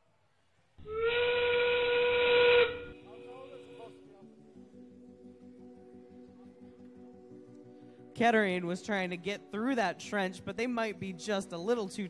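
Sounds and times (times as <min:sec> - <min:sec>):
steam whistle blast: 0:00.8 - 0:03.8.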